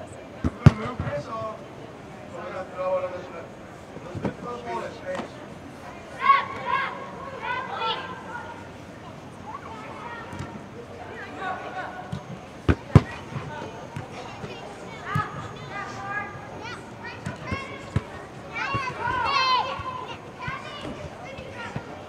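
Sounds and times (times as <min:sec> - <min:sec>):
players calling out: 0:05.7 - 0:22.0
soccer ball kicks: 0:12.1 - 0:15.5, 0:17.2 - 0:21.0.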